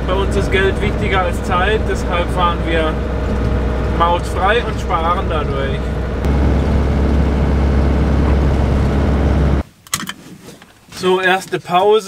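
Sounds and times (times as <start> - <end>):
engine drone inside vehicle: 0.0 - 9.6
road and tyre noise: 0.0 - 10.9.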